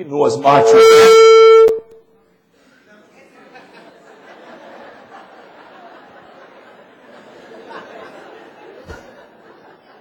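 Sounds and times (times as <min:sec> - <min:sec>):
loud pitched tone: 0:00.4 - 0:02.0
audience murmur: 0:02.5 - 0:10.0.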